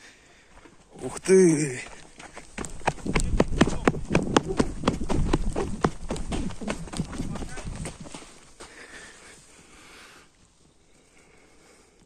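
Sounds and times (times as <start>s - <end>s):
footsteps on sandy stony ground: 0.4s - 9.6s
camera movement rumble: 2.4s - 8.4s.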